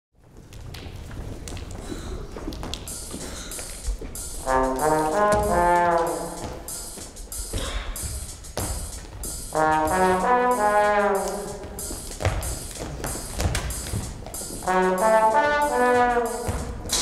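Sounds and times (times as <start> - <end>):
loud held brass chord: 9.5 - 11.8, 14.6 - 17.0.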